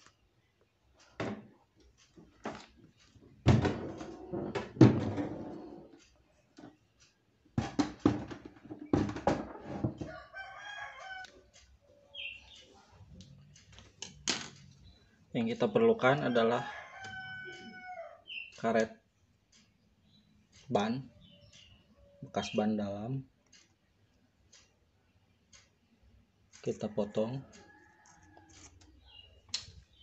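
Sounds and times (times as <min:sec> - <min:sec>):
refrigerator door knocks and thumps: 0:01.2 - 0:01.5, 0:03.4 - 0:05.4, 0:07.6 - 0:10.1
rooster crowing: 0:10.0 - 0:11.4, 0:16.2 - 0:18.2.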